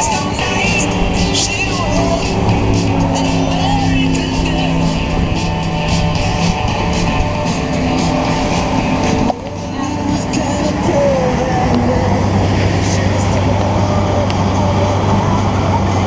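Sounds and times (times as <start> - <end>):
boat engine running: 0.0 - 16.0
music playing: 0.0 - 16.0
wake water rushing: 0.0 - 16.0.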